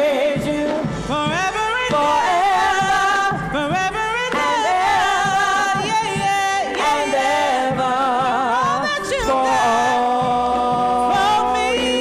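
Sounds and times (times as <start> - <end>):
group singing worship song: 0.0 - 12.0.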